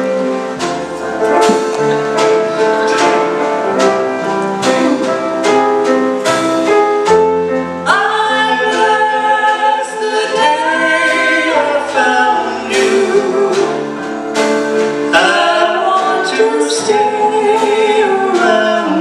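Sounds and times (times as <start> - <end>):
acoustic guitar: 0.0 - 19.0
woman and man singing duet: 7.9 - 13.9, 15.1 - 19.0.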